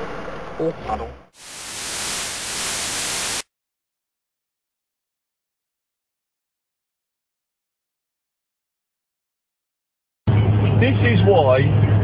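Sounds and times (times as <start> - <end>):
static hiss: 1.4 - 3.5.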